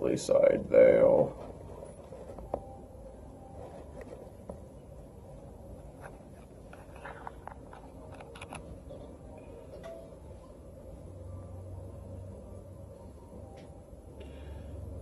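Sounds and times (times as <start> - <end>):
low hum: 0.0 - 15.0.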